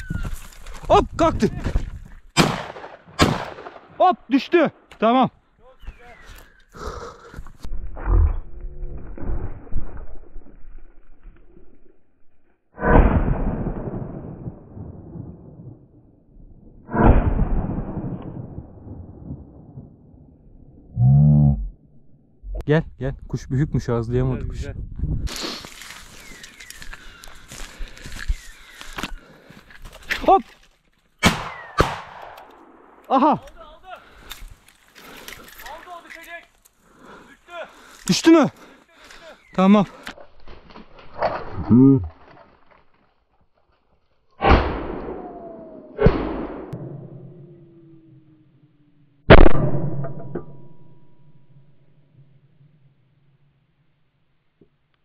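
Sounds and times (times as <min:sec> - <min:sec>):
shotgun shots: 0:02.4 - 0:04.0, 0:31.2 - 0:33.0, 0:49.3 - 0:50.4.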